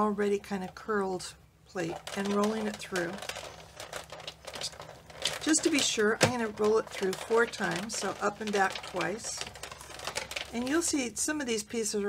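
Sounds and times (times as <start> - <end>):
crackling clicks of squeezed plates: 1.9 - 10.8.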